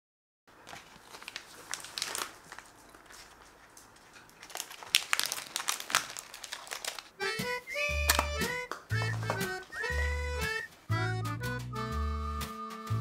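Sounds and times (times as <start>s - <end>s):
treat bag crinkling: 0.5s - 11.0s
background music with held notes: 7.2s - 13.0s.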